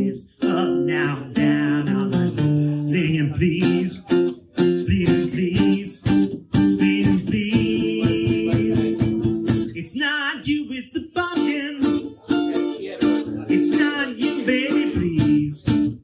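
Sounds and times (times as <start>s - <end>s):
guitar strumming: 0.0s - 9.9s, 11.0s - 16.0s
man singing: 0.0s - 16.0s.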